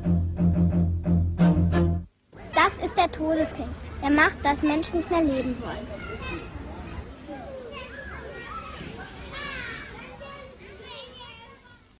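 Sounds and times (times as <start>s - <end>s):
children calling and chattering: 2.3s - 12.0s.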